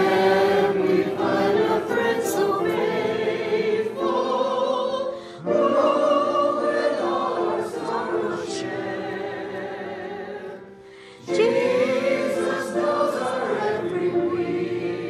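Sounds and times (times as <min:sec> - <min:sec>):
choir and congregation singing hymn: 0:00.0 - 0:15.0.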